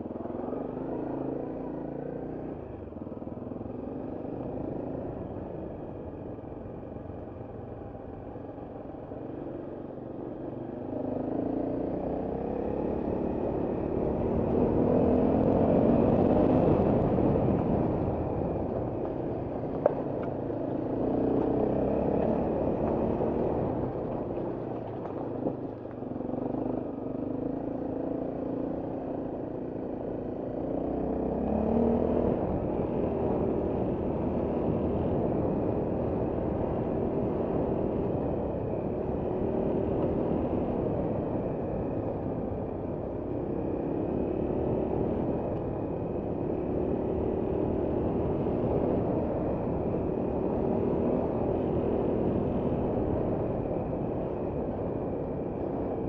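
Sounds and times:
motorcycle engine revving: 10.9s - 19.1s.

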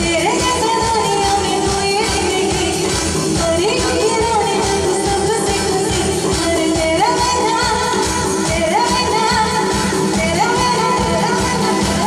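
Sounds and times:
drums: 0.0s - 12.0s
woman singing pop song: 0.0s - 12.0s.

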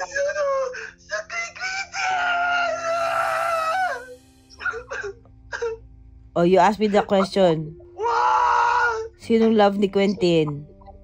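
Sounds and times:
boy crying through phone speaker: 0.0s - 5.7s.

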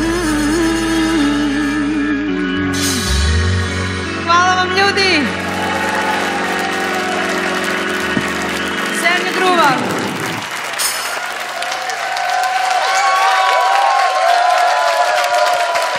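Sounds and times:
live band chord sliding down: 0.0s - 11.3s
cheering and whoops: 5.3s - 8.7s, 10.1s - 15.9s
audience applause: 5.3s - 15.9s.

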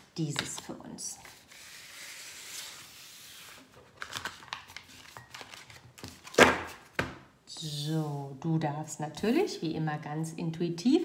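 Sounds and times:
cards sliding on tabletop: 1.2s - 3.8s.

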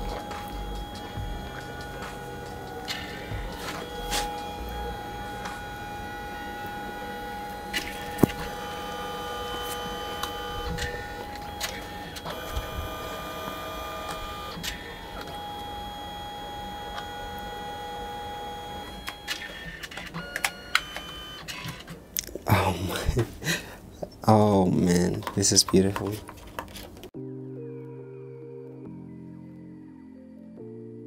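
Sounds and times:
photo printer whirring: 0.0s - 22.0s
printer clicks: 18.7s - 21.9s.

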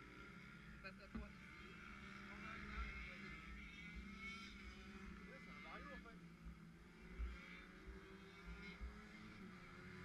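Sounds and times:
scooter engines running: 0.0s - 10.0s.

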